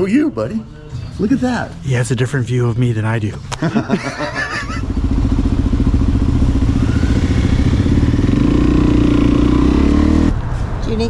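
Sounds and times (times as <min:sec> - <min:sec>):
motorcycle engine idling and revving: 0:04.0 - 0:11.0.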